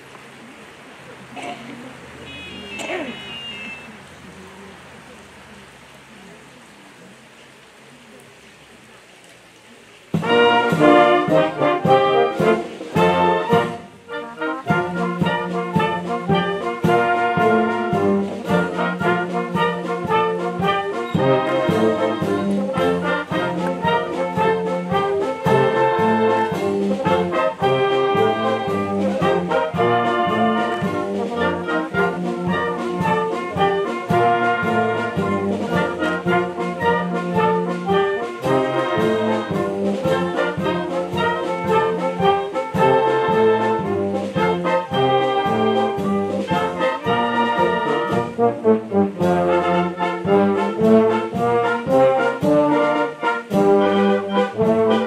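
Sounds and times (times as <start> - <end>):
wind band playing a march: 1.4 - 4.0, 10.1 - 55.0.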